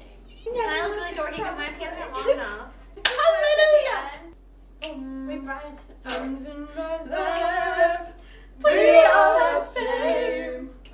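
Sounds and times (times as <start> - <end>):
girls singing unaccompanied: 3.1 - 10.9.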